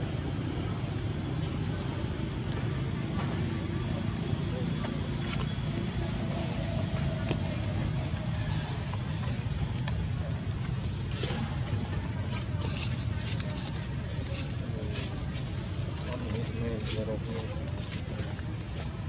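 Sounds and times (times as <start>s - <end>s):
indistinct voices: 0.0s - 19.0s.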